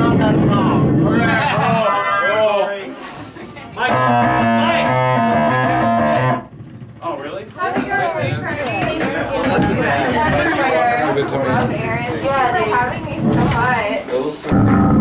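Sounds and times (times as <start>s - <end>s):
voices: 0.0s - 14.7s
warbling bending electronic tones: 1.2s - 2.8s, 3.8s - 6.5s
buzzy electronic tone: 1.3s - 2.9s, 3.8s - 6.5s, 14.5s - 15.0s.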